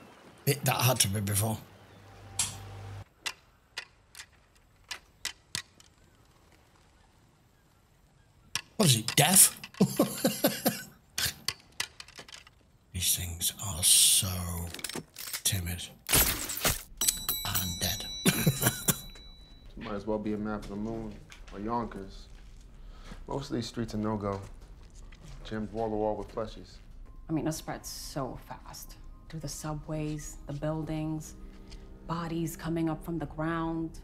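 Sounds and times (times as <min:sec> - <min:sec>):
man chuckling: 0:09.8 - 0:11.5, 0:18.2 - 0:19.2.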